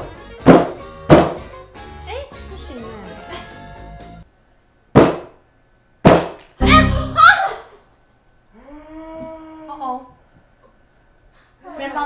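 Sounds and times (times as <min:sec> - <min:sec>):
hard bread knocking on wooden board: 0:00.4 - 0:01.4, 0:05.0 - 0:05.3.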